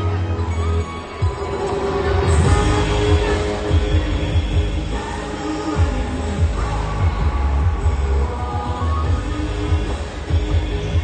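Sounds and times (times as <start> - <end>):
music with pulsing bass: 0.0 - 11.0.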